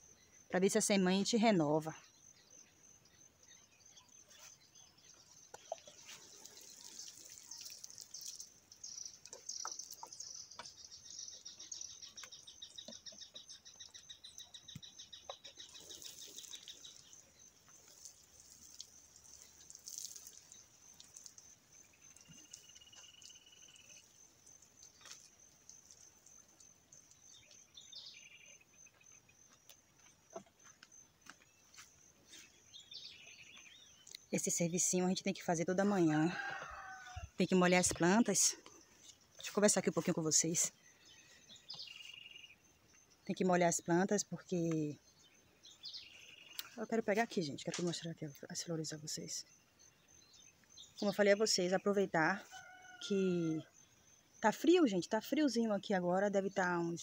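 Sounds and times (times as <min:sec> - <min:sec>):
bird chirping: 0:00.0 - 0:57.0
crickets trilling: 0:00.0 - 0:57.0.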